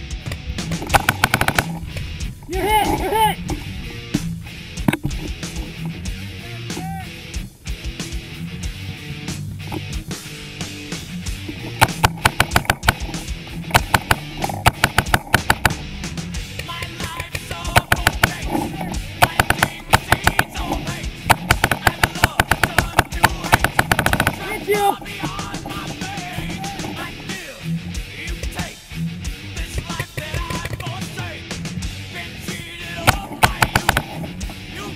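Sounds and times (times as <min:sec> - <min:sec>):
rock music: 0:00.0 - 0:34.9
paintball markers firing: 0:00.3 - 0:02.1, 0:11.5 - 0:27.1, 0:29.7 - 0:31.0, 0:33.0 - 0:34.6.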